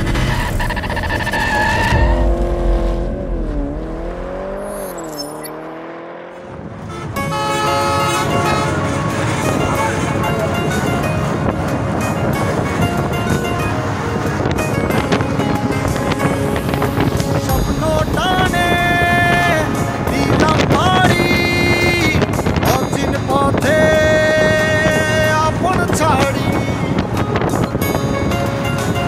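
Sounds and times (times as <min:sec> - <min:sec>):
dipping and rising tone: 0:00.0 - 0:06.6
vehicle noise: 0:00.0 - 0:29.0
music: 0:06.9 - 0:29.0.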